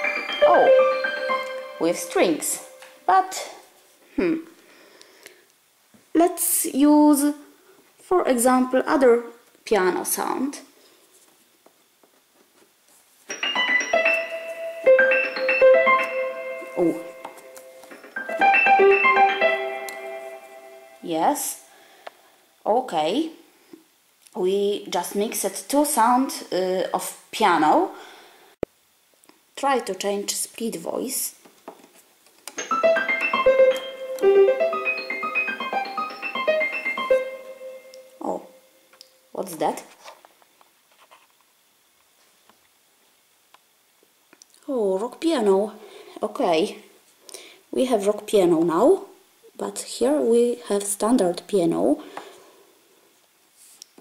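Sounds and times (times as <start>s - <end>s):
keyboard piano notes and chords: 0.0s - 3.1s, 13.3s - 21.0s, 32.5s - 38.8s.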